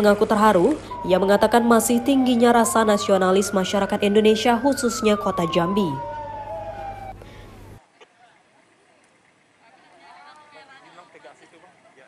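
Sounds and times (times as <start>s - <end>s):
low street noise: 0.0s - 12.0s
siren winding down: 0.2s - 7.8s.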